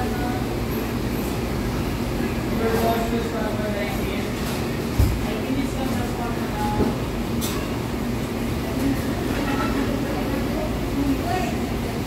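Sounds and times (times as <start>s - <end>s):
low restaurant room rumble: 0.0s - 12.0s
faint indistinct voices: 1.7s - 12.0s.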